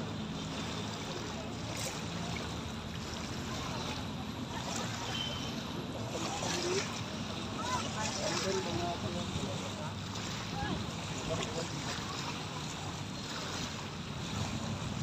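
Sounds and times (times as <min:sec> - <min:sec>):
faint distant voices: 0:00.0 - 0:15.0
small waves washing at shore: 0:00.0 - 0:15.0.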